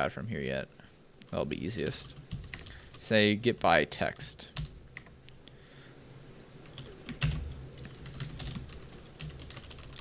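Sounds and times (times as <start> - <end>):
computer keyboard typing: 6.1 - 10.0.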